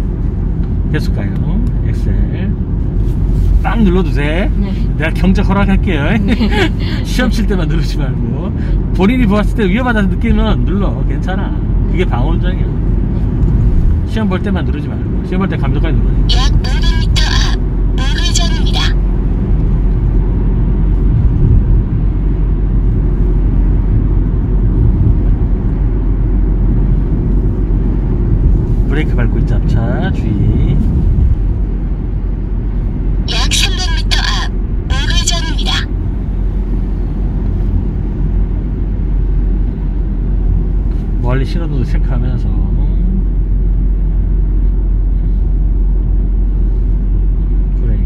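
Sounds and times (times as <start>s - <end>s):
car engine and tyre rumble: 0.0s - 48.0s.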